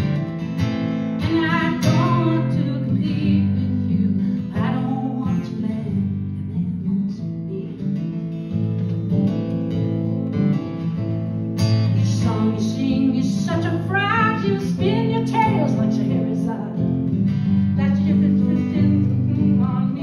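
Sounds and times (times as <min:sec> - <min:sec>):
acoustic guitar strumming chords: 0:00.0 - 0:20.0.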